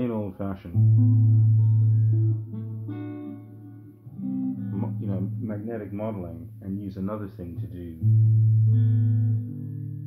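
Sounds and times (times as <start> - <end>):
electric guitar notes: 0.6 - 6.8, 7.6 - 10.0.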